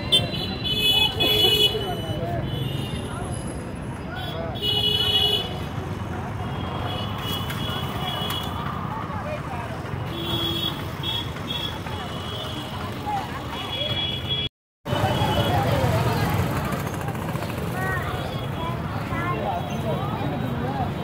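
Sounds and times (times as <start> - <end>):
chatter of many voices: 0.0 - 6.5, 7.8 - 10.2, 11.6 - 14.1, 14.9 - 21.0
passing motor traffic hum: 14.9 - 21.0.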